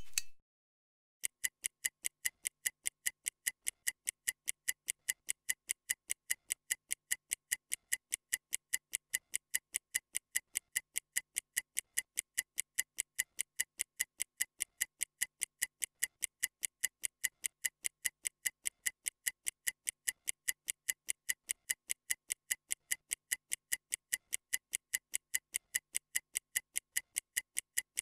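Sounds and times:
stopwatch ticking: 1.2s - 28.0s.

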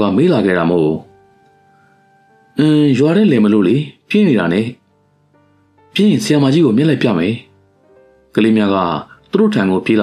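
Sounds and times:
person reading aloud: 0.0s - 1.1s, 2.6s - 4.8s, 5.9s - 7.5s, 8.3s - 10.0s
faint background music: 0.0s - 10.0s.

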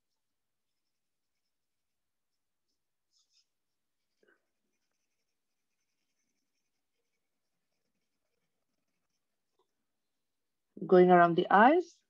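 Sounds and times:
colouring scratching on paper: 0.0s - 9.8s.

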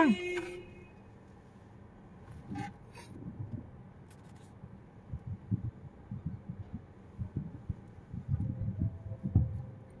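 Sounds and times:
low thumps inside moving car: 1.7s - 10.0s.

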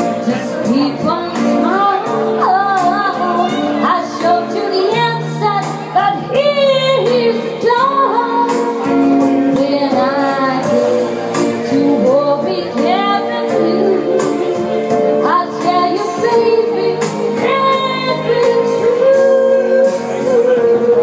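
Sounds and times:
instrumental backing: 0.0s - 21.0s
woman singing into microphone: 0.0s - 21.0s.

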